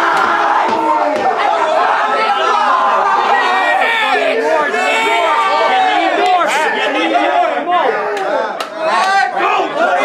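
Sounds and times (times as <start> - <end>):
crowd shouting and hollering: 0.0 - 10.0
sharp claps: 8.1 - 9.2.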